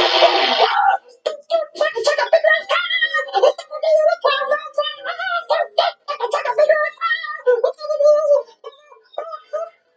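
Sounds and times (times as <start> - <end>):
high-pitched cartoon vocal sounds: 0.0 - 9.8.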